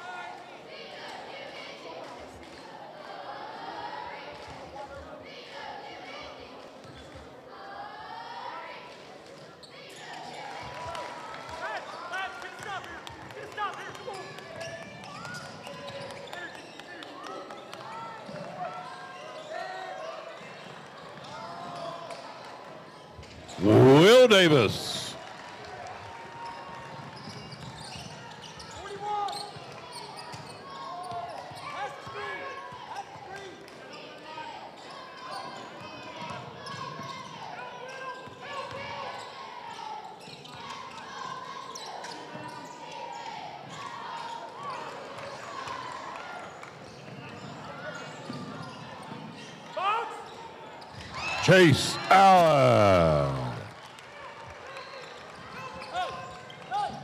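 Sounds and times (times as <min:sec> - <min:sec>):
crowd chatter: 0:23.6 - 0:25.2, 0:51.4 - 0:53.7.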